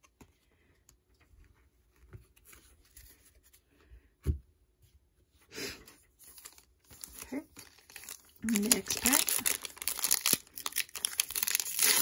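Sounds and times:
foil wrapper rustling: 0:06.2 - 0:12.0.

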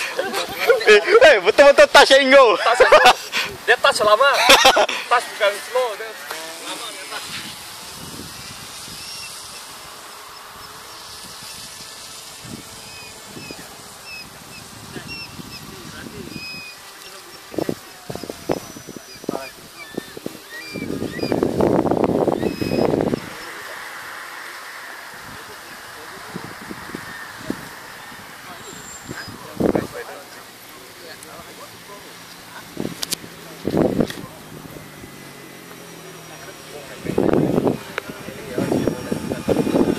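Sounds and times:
distant model plane motors buzzing: 0:00.0 - 0:39.9
loud burst of noise: 0:20.8 - 0:30.0.

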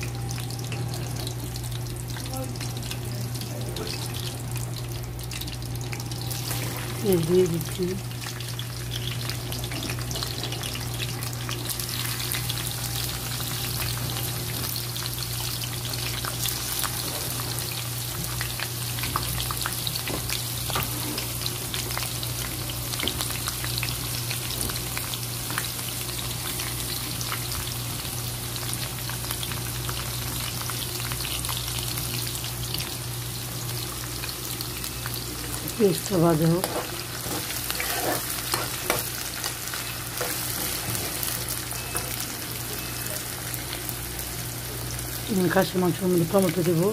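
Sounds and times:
onions sizzling in hot oil: 0:00.0 - 0:46.9.

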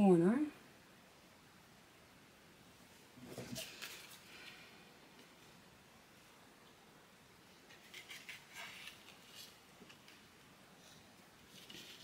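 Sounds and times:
paper rustling: 0:07.7 - 0:10.3, 0:11.4 - 0:12.0.

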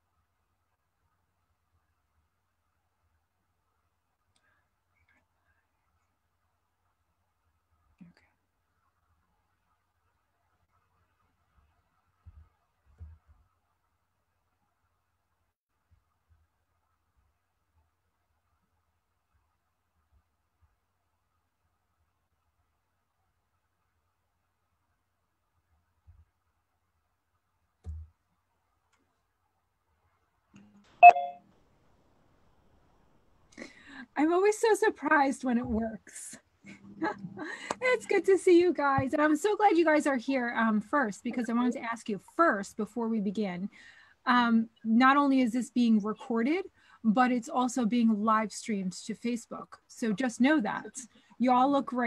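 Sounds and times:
electronic notification chime: 0:31.0 - 0:31.4.

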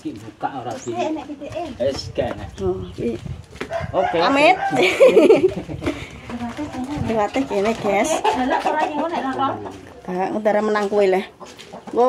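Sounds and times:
rooster crowing: 0:03.6 - 0:05.4.

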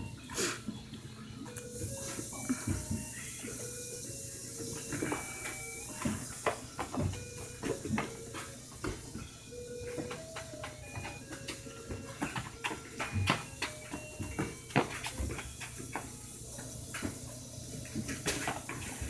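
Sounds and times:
soccer ball kicked on concrete: 0:04.9 - 0:17.2
sneakers scuffing: 0:04.9 - 0:19.0.

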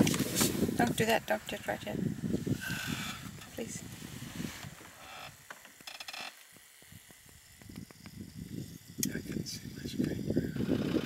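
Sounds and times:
camera zoom motor whirring: 0:02.2 - 0:09.2.

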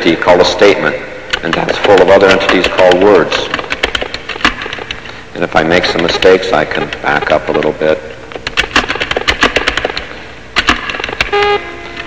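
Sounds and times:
keyboard keys clacking: 0:01.3 - 0:05.0, 0:05.6 - 0:12.0.

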